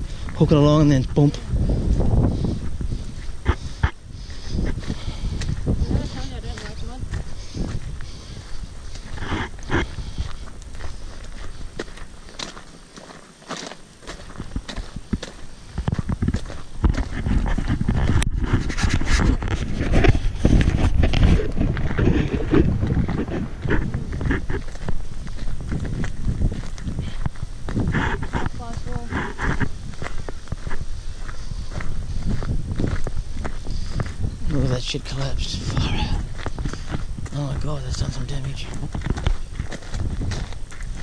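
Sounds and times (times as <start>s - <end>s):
low microphone rumble: 0.0s - 12.2s, 14.4s - 41.0s
boots trudging through mud: 3.3s - 18.0s.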